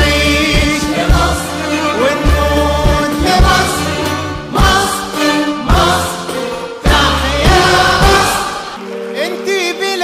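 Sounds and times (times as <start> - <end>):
voices singing over drum beat: 0.0 - 8.8.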